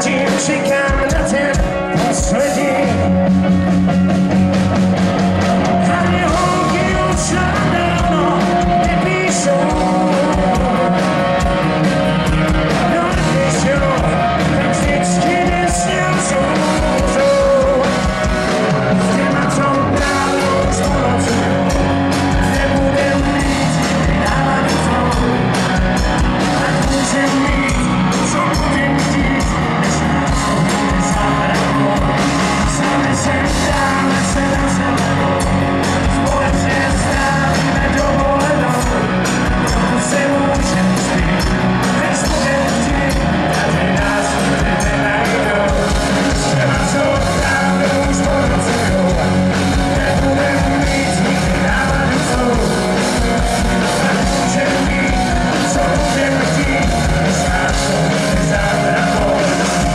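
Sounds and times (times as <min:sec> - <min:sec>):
man singing: 0:00.0 - 0:03.6, 0:05.3 - 0:59.9
bass guitar: 0:00.0 - 0:59.9
drumbeat: 0:00.0 - 0:59.9
electric guitars: 0:00.0 - 0:59.9
rock band playing live: 0:00.0 - 0:59.9.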